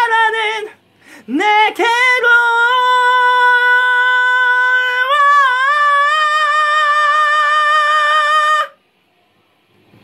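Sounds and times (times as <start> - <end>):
person singing a high vowel: 0.0 - 8.8
faint room noise: 0.0 - 10.0.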